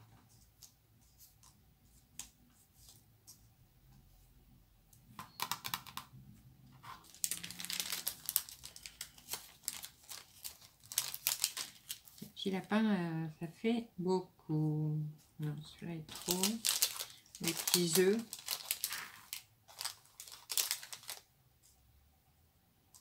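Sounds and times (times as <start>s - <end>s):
plastic bag crinkling: 6.8s - 12.7s, 16.1s - 21.3s
woman's voice: 12.2s - 16.7s, 17.4s - 18.3s.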